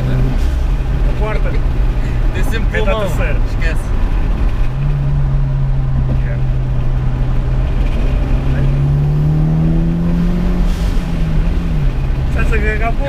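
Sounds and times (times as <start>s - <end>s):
road rumble: 0.0s - 13.0s.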